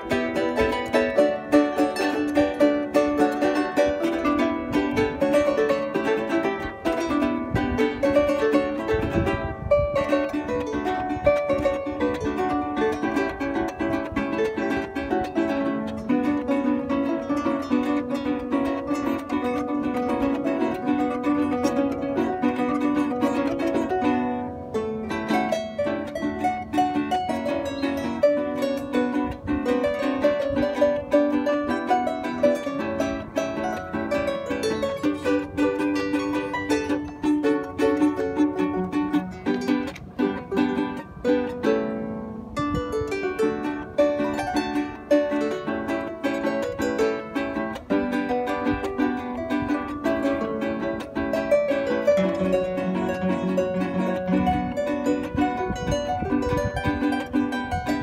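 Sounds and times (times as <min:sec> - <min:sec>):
plucked harp playing: 0:00.0 - 0:58.0.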